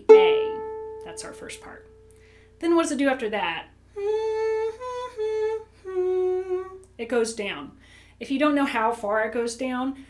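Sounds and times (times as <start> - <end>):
woman singing without words: 3.9 - 7.0.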